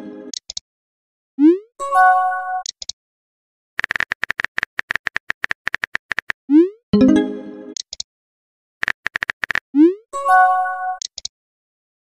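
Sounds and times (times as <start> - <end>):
simulated keyboard typing clicks: 0.3 - 0.6, 2.6 - 3.0, 3.8 - 6.4, 7.7 - 8.1, 8.8 - 9.6, 11.0 - 11.3.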